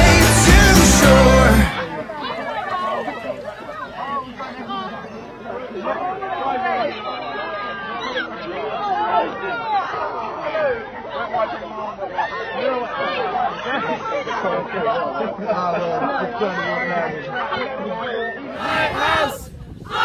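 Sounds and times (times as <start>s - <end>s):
teenagers chattering and calling out: 0.0s - 20.0s.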